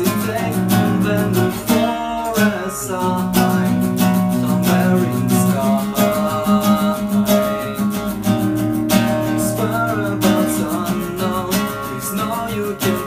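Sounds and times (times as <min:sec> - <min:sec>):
classical guitar strumming: 0:00.0 - 0:13.0
man singing: 0:00.0 - 0:13.0.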